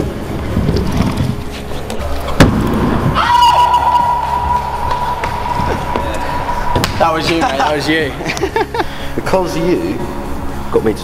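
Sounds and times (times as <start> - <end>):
background music: 0.0 - 11.0
steady high tone: 1.6 - 11.0.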